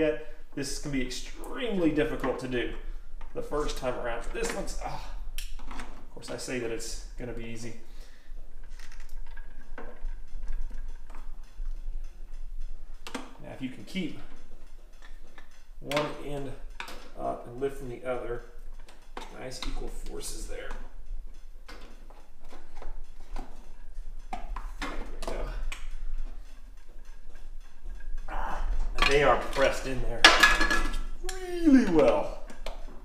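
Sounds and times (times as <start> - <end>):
low steady hum: 0.0 - 33.0
screwdrivers clicking and scraping: 8.6 - 11.8, 13.0 - 13.3, 16.7 - 17.2, 20.7 - 31.3.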